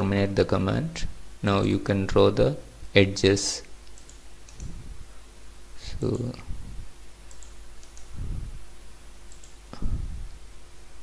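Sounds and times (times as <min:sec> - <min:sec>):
faint steady hum: 0:00.0 - 0:11.0
computer mouse clicks: 0:03.8 - 0:04.8, 0:07.2 - 0:08.2, 0:09.3 - 0:09.6.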